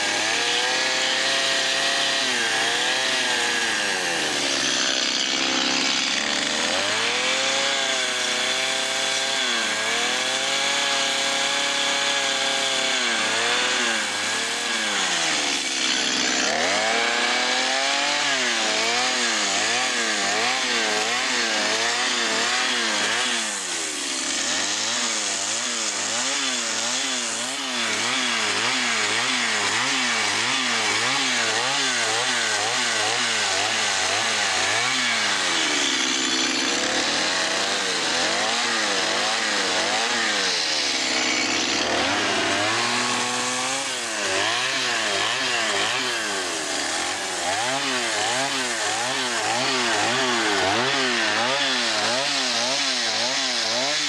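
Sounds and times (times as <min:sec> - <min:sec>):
chainsaw cutting wood: 0:00.0 - 0:54.0.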